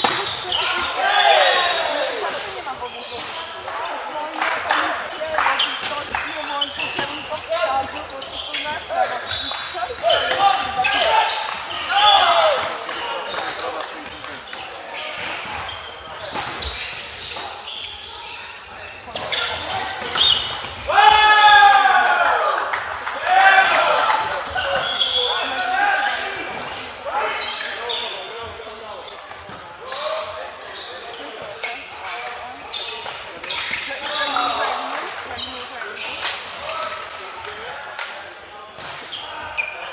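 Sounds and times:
players shouting calls: 0:00.0 - 0:14.0, 0:15.0 - 0:28.8, 0:33.6 - 0:35.4.

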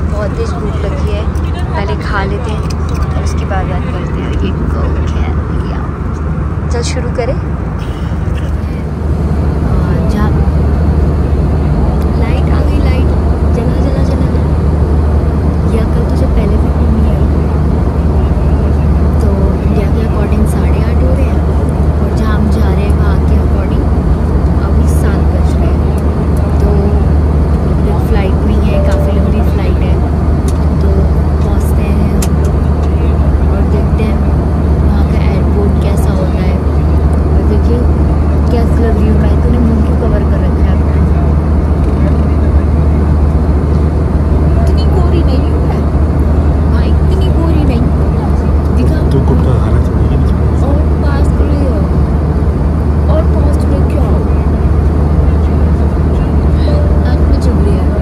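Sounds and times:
faint voices: 0:00.0 - 0:58.0
vehicle drone from inside cabin: 0:00.0 - 0:58.0.

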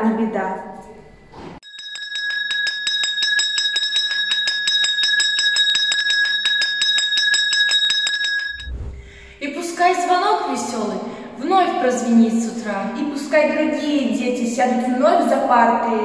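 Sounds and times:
handbell ringing rapidly: 0:01.6 - 0:08.7.

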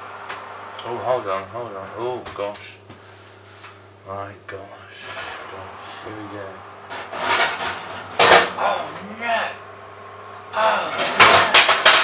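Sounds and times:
man's wordless exclamations: 0:08.6 - 0:09.6.

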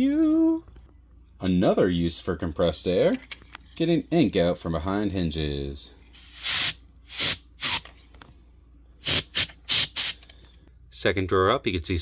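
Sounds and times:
compressed air spray blasts: 0:06.2 - 0:07.9, 0:09.0 - 0:10.2.

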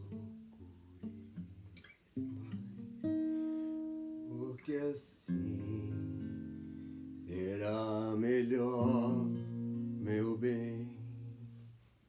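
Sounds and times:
acoustic guitar chord: 0:00.0 - 0:11.8
man singing a long note: 0:07.3 - 0:11.5.

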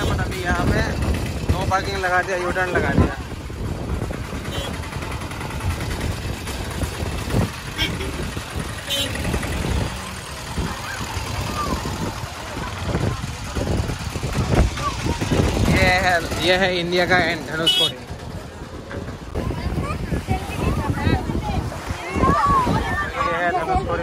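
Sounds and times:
auto-rickshaw engines running: 0:00.0 - 0:24.0
people's voices: 0:00.0 - 0:24.0.

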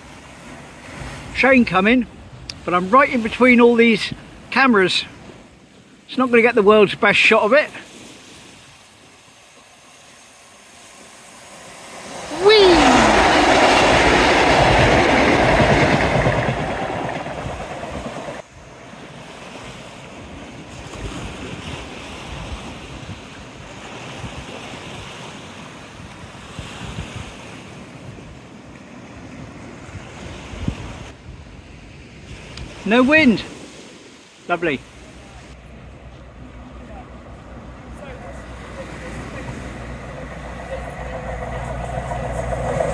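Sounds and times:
waves washing against a wall: 0:00.0 - 0:31.2, 0:32.2 - 0:42.9
train passing close by: 0:07.9 - 0:26.0, 0:35.0 - 0:42.9.

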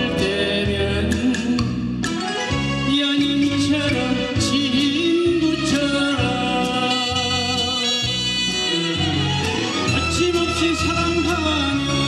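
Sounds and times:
backing track bass beat: 0:00.0 - 0:12.0
man singing pop song: 0:00.0 - 0:12.0.

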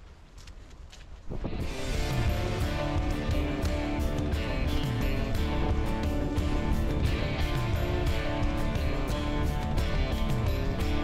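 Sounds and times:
low wind rumble on microphone: 0:00.0 - 0:11.0
background music with held notes: 0:01.4 - 0:11.0.

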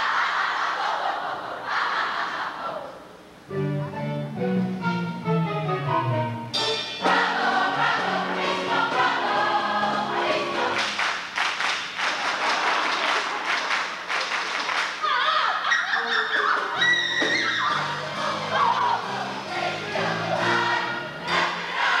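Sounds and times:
chorus singing: 0:00.0 - 0:03.1, 0:06.6 - 0:11.2, 0:16.8 - 0:22.0
orchestra playing: 0:03.5 - 0:10.8, 0:16.8 - 0:21.9
hand clapping: 0:10.7 - 0:15.0.

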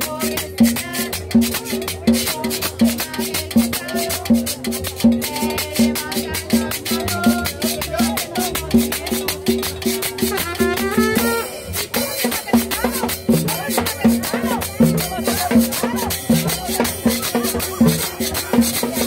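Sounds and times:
upbeat latin dance music: 0:00.0 - 0:19.0.

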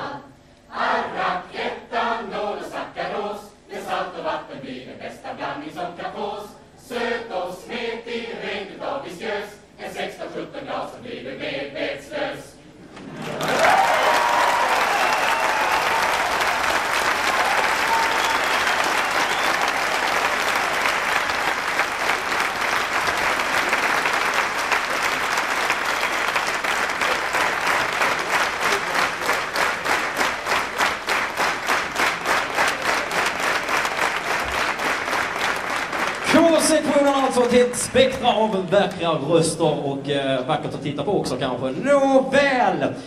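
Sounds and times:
audience applauding: 0:13.0 - 0:38.2
rhythmic clapping: 0:13.1 - 0:39.1
cheers: 0:13.2 - 0:21.3.

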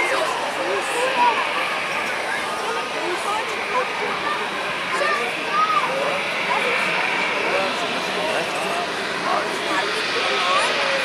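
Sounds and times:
jet engines whining: 0:00.0 - 0:11.0
people chattering: 0:00.0 - 0:11.0.

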